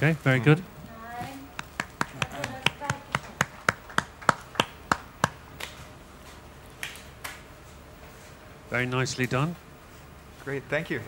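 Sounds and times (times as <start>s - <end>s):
hand claps: 1.5s - 5.8s, 6.8s - 7.4s.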